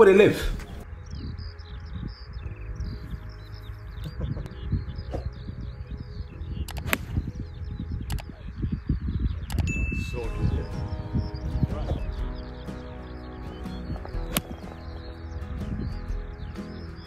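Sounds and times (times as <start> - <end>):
birdsong: 0.0 - 17.0
wind rumbling on microphone: 0.0 - 17.0
bell-like ding: 9.7 - 10.5.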